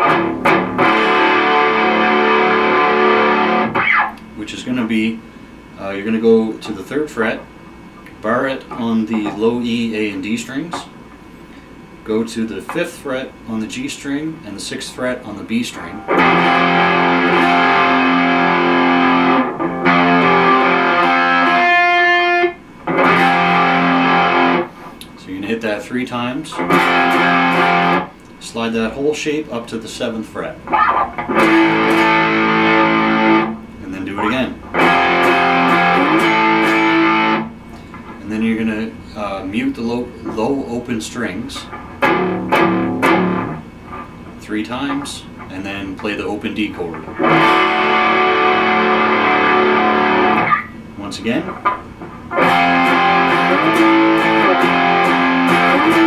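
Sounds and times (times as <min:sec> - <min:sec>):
distorted electric guitar chord: 0:00.0 - 0:04.2, 0:15.7 - 0:24.8, 0:26.6 - 0:28.1, 0:30.7 - 0:37.6, 0:42.0 - 0:43.7, 0:47.2 - 0:50.7, 0:52.3 - 0:56.0.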